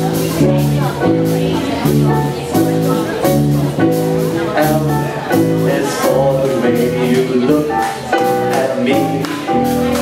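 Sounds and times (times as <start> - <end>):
drum kit: 0.0 - 10.0
jazz band playing swing: 0.0 - 10.0
upright bass: 0.0 - 10.0.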